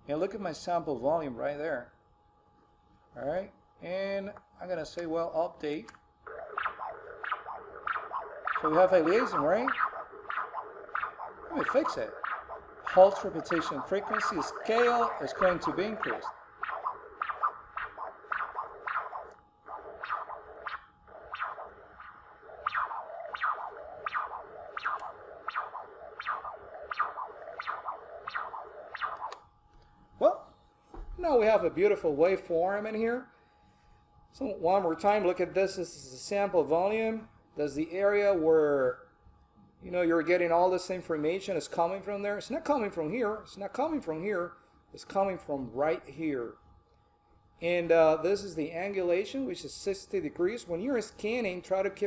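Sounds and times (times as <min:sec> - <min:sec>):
doppler ultrasound pulse whoosh: 0:06.2 - 0:33.0.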